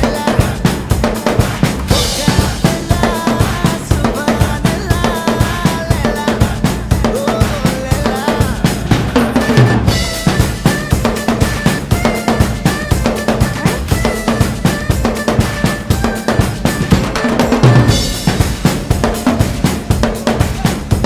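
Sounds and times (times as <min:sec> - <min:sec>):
acoustic drum kit groove: 0:00.0 - 0:21.0
backing track music: 0:00.0 - 0:21.0.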